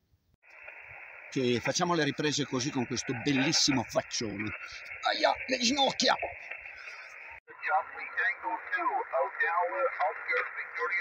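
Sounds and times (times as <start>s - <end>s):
receiver hiss: 0.4s - 11.0s
tinny radio voice: 1.4s - 6.4s, 7.5s - 11.0s.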